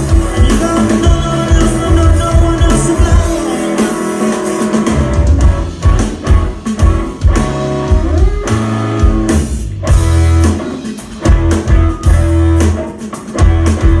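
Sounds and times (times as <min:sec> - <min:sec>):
rock band playing: 0:00.0 - 0:14.0.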